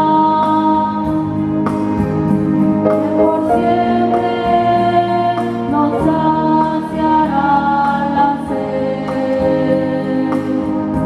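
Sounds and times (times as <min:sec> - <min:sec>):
choir singing a hymn: 0:02.8 - 0:11.0.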